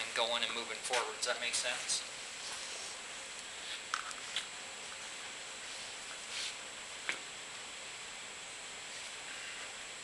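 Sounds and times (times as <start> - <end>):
steady room hiss: 0.0 - 10.0.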